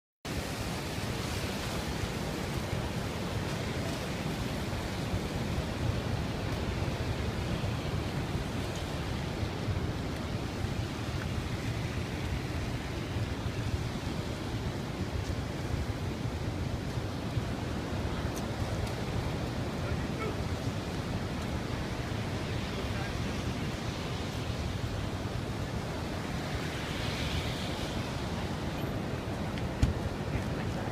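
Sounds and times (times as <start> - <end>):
waterfall rushing: 0.3 - 30.9.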